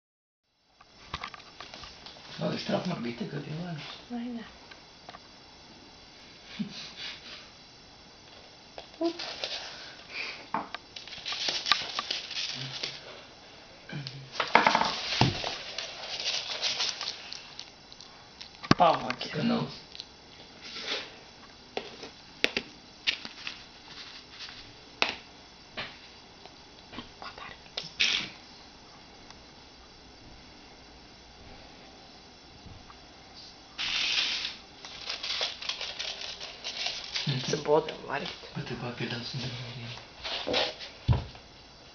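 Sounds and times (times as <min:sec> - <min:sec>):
short hiss: 0:27.9 - 0:28.4, 0:33.8 - 0:34.6.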